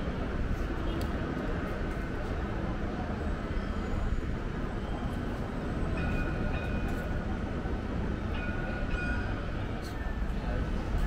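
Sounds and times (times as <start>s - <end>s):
city ambience rumble: 0.0s - 11.0s.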